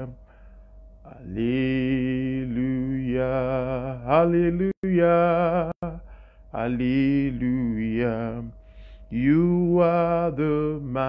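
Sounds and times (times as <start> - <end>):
man singing: 1.1 - 6.0, 6.6 - 8.5, 9.1 - 11.0.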